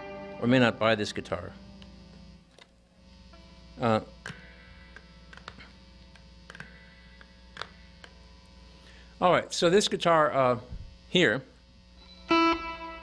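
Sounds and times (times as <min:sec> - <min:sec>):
guitar amplifier hum: 0:00.0 - 0:13.0.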